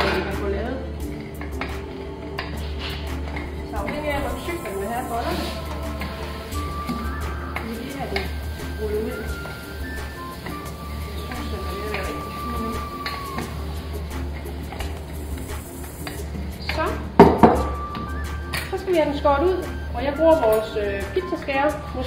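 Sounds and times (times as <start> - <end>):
music with long held notes: 0.0 - 22.0.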